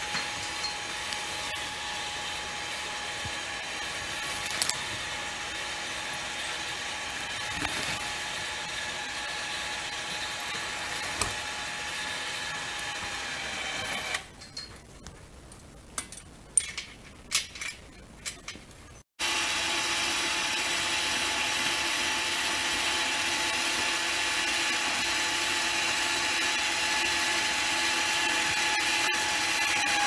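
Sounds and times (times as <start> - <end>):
winch whining: 0.0 - 14.4.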